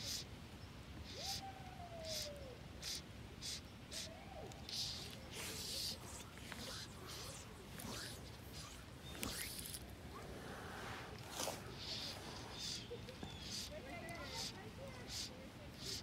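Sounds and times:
fishing line swishing through fingers: 3.5 - 13.7.

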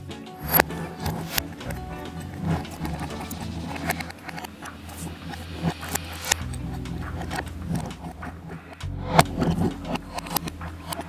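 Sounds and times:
low steady drone: 0.0 - 11.0
sharp metal click: 0.4 - 2.0.

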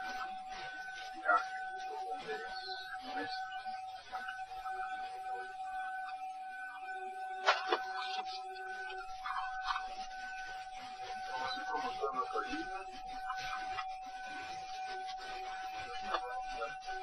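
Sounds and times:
faint muffled cockpit sounds: 0.0 - 17.0
steady electrical tone: 0.0 - 17.0.

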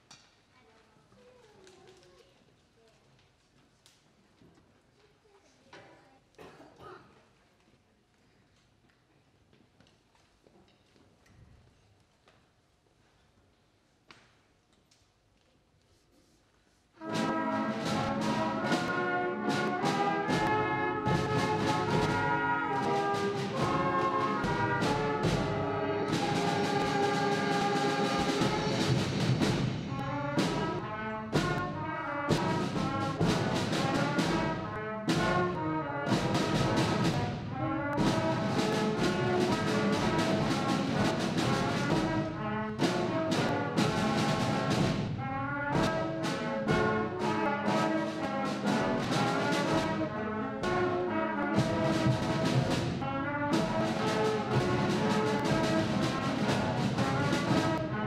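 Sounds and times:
concert band playing: 17.0 - 58.0.

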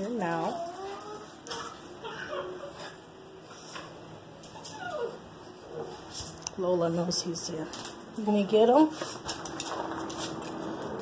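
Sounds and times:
dog whining: 0.3 - 3.1, 4.4 - 6.0.

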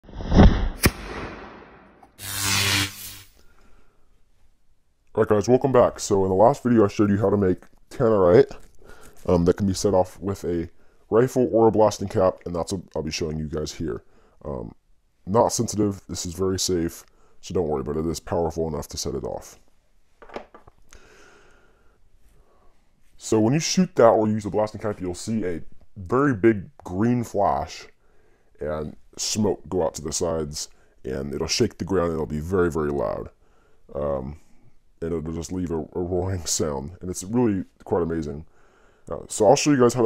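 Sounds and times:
blasting cap explosion: 0.2 - 2.8.

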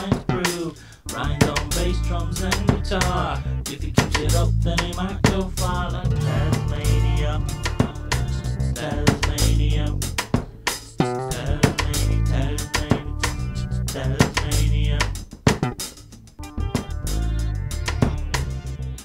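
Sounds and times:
bass guitar: 0.0 - 19.0
drum kit: 0.0 - 19.0
guitar: 0.0 - 19.0.

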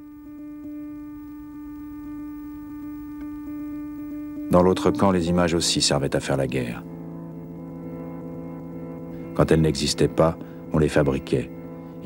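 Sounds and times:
sustained droning note: 0.0 - 12.0.

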